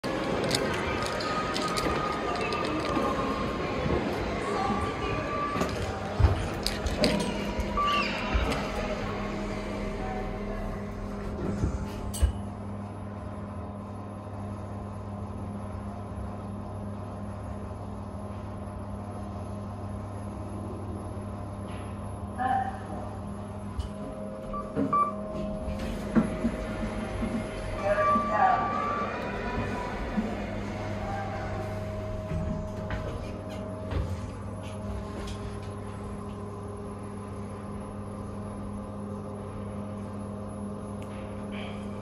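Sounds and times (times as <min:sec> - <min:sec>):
busy indoor ambience: 0:00.0 - 0:42.0
lift low hum: 0:00.0 - 0:42.0
lift doors shutting: 0:00.3 - 0:12.6.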